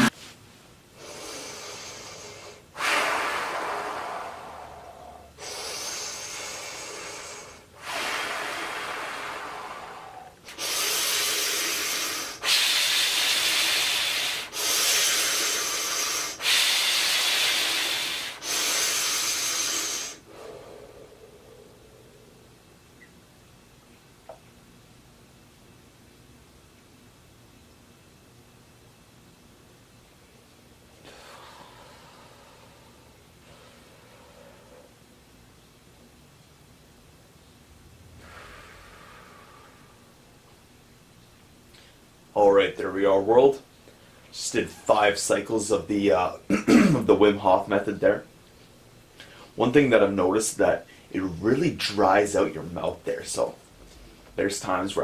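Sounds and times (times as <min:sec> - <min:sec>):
deep forceful breathing: 0:01.0 - 0:22.6, 0:31.0 - 0:35.1, 0:38.1 - 0:40.3.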